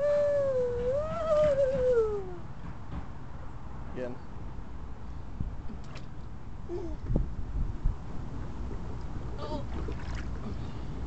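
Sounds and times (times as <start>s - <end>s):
long drawn-out voice call: 0.0s - 2.5s.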